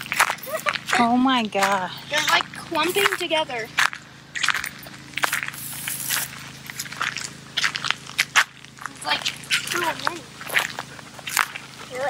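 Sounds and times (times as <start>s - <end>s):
footsteps on sandy dirt: 0.0s - 12.0s
person speaking: 0.4s - 3.8s, 8.9s - 10.6s.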